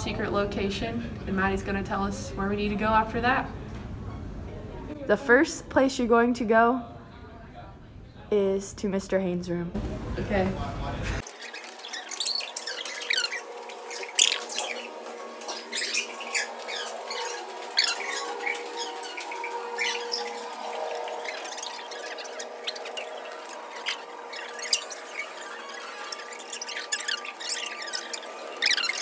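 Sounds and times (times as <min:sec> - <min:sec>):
sneakers squeaking on floor: 0:11.2 - 0:29.0.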